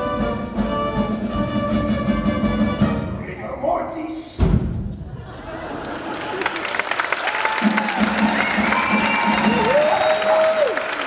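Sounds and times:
live musical theatre music: 0.0 - 11.0
audience applauding and cheering: 5.7 - 11.0.

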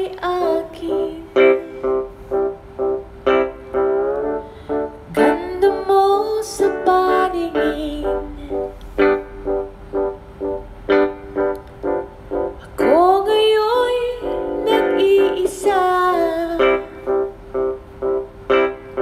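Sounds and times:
woman singing: 0.0 - 1.8, 5.1 - 8.7, 12.7 - 17.0
acoustic guitar chords: 0.0 - 19.0.

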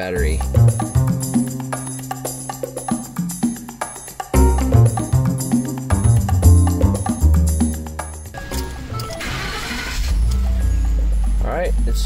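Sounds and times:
starter motor cranking: 8.6 - 10.6.

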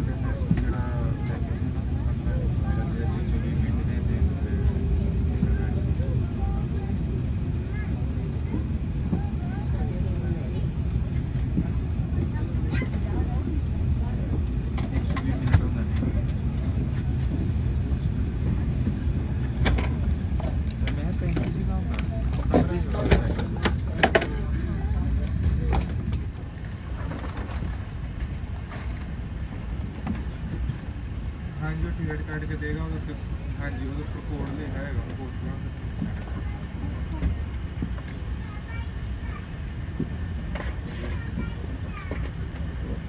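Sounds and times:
airliner cabin rumble: 0.0 - 43.0.

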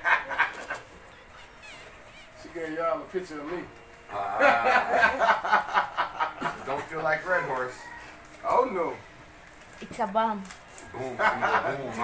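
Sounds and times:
wrapping paper tearing and crackling: 9.4 - 11.0.

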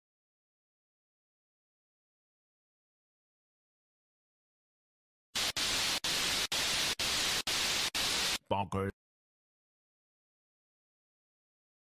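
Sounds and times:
static-like hiss: 5.4 - 8.5.

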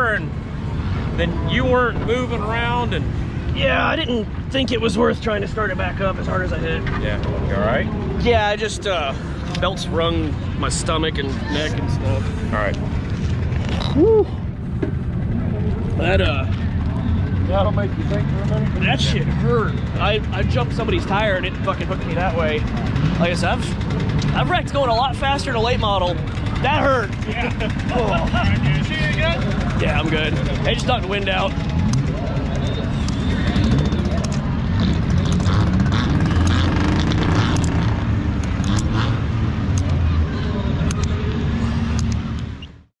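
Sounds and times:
vehicle engine idling: 7.5 - 37.0
sharp clicks and knocks: 34.1 - 39.0.

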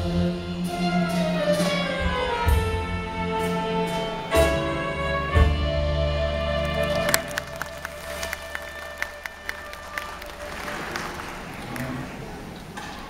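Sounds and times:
audience applause: 6.5 - 12.6.

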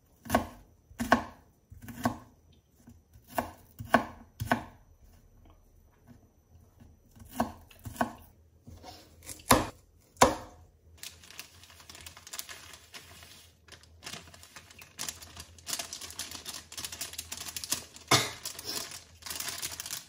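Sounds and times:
knife chopping onion on board: 0.2 - 4.8, 6.8 - 10.6.

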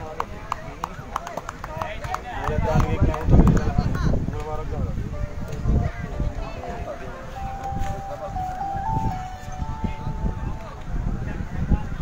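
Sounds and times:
electronic jingle: 6.7 - 10.8.

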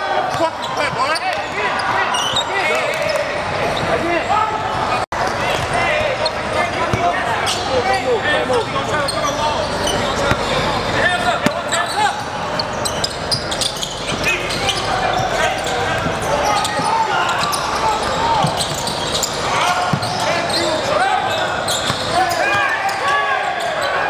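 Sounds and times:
crowd talking in a gym: 0.0 - 24.0
basketball bouncing on court: 11.4 - 11.8, 12.9 - 20.2, 21.7 - 22.7.

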